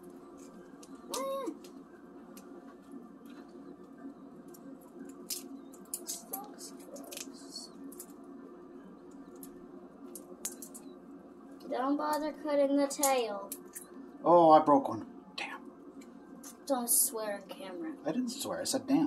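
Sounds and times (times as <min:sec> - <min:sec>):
steady low hum: 0:00.0 - 0:19.0
shrimp shells crackling and snapping: 0:03.2 - 0:08.2, 0:09.0 - 0:10.9, 0:13.0 - 0:14.0.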